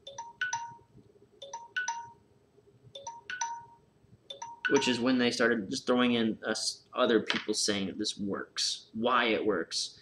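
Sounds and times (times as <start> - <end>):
phone ringtone chime notes: 0.0 - 2.2, 3.0 - 5.1.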